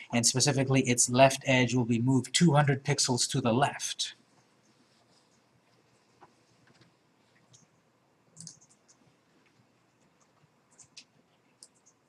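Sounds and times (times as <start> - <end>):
computer mouse clicks: 6.2 - 12.0.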